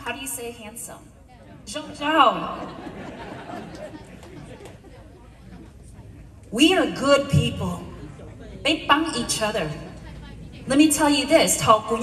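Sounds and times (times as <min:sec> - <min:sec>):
quiet chatter of voices: 0:00.9 - 0:12.0.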